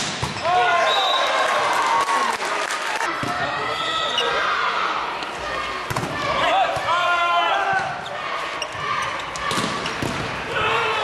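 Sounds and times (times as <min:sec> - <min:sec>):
players shouting: 0:03.1 - 0:11.0.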